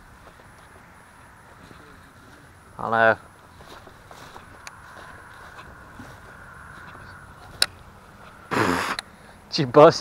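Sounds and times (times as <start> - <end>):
faint outdoor background hum: 0.0 - 10.0.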